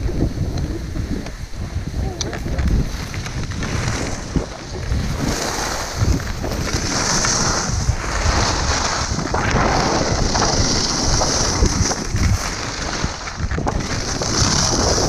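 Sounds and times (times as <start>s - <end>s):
skis scraping on snow: 0.0s - 15.0s
wind buffeting microphone: 0.0s - 15.0s.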